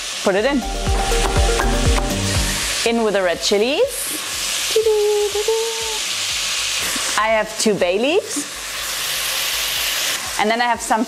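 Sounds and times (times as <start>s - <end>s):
vegetables sizzling in oil: 0.0s - 11.0s
steady pitched tone: 0.6s - 2.9s.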